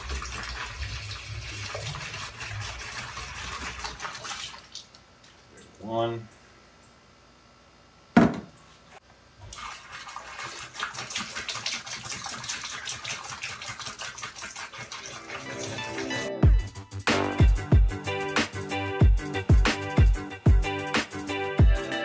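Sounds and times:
liquid splashing into tote: 0.0s - 5.7s, 9.4s - 16.1s
music with deep beats: 16.4s - 22.0s.

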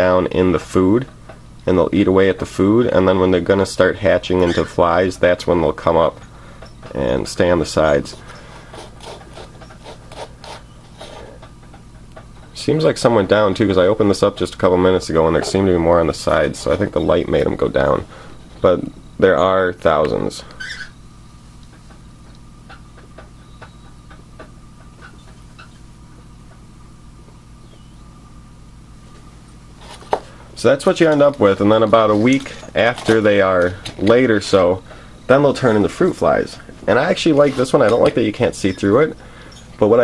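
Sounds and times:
faint electrical hum: 0.0s - 40.0s
plastic cup rubbing and scraping: 8.5s - 11.4s.

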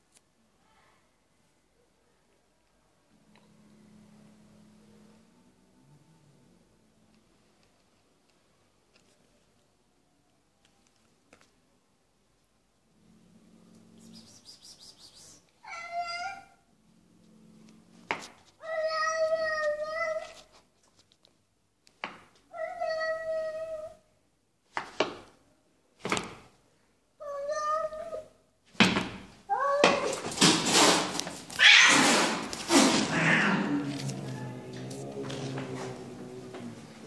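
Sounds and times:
cat yowling: 15.6s - 16.6s, 31.6s - 36.8s
cat growling: 31.5s - 37.0s.

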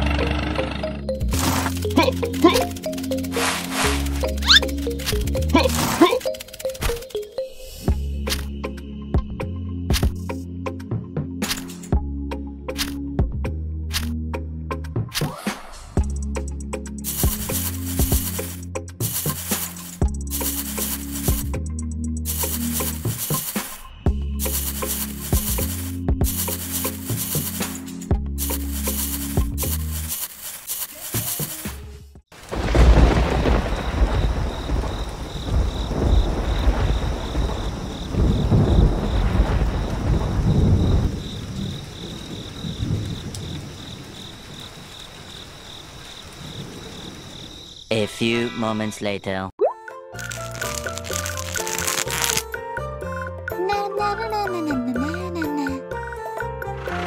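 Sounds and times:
background music: 0.0s - 30.0s, 47.9s - 57.0s
rain: 32.3s - 47.7s, 50.2s - 52.4s
rolling thunder: 32.4s - 47.6s.

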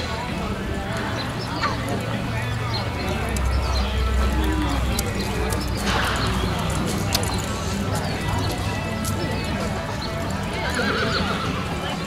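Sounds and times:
indistinct background voices: 0.0s - 12.0s
horse hoofbeats on dirt: 3.0s - 11.9s.

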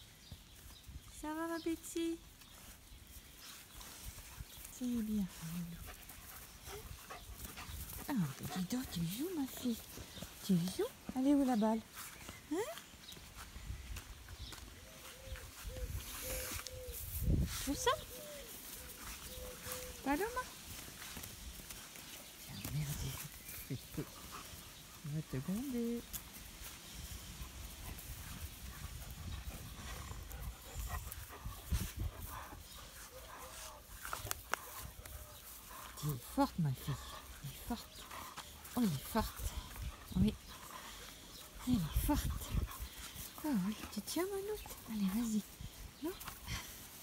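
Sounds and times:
faint dog sounds: 3.4s - 13.5s, 14.4s - 47.0s.

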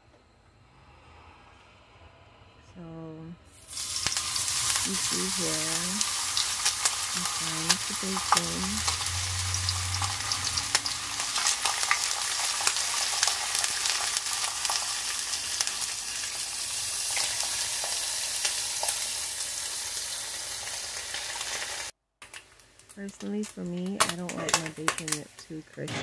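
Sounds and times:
bacon sizzling and popping in pan: 3.6s - 25.4s.

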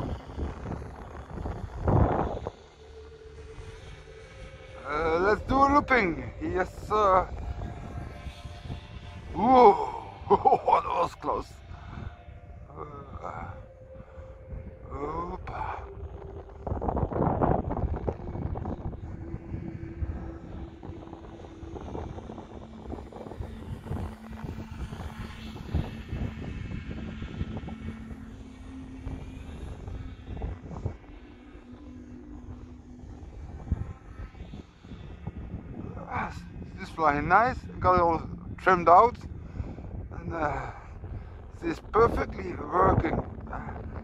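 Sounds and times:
wind rumbling on microphone: 0.0s - 44.0s
electric model plane motor humming: 16.7s - 35.8s.

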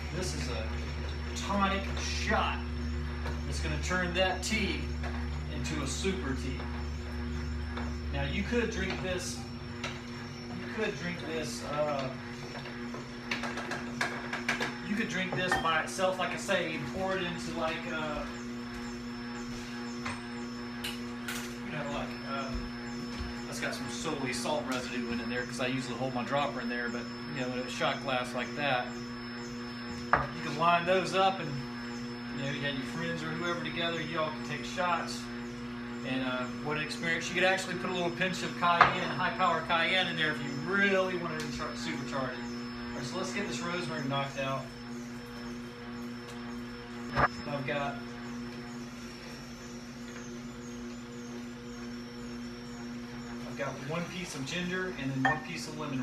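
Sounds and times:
juicer motor humming: 0.0s - 56.0s.

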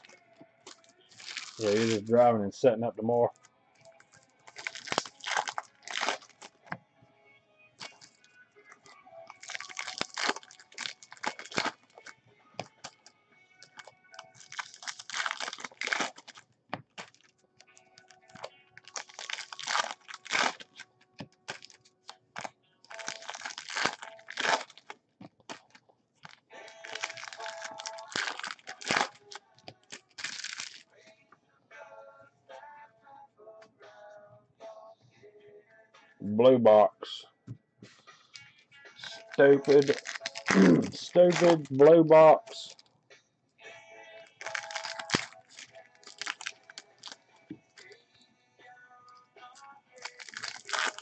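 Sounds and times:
packaging torn and crinkled: 0.0s - 2.1s, 4.1s - 6.6s, 7.8s - 8.2s, 9.2s - 16.4s, 17.0s - 30.9s, 39.0s - 41.8s, 44.3s - 47.2s, 50.0s - 51.0s.

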